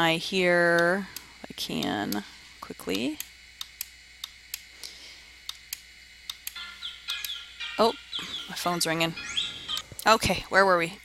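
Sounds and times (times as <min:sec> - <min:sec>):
computer clicks: 0:02.9 - 0:07.4.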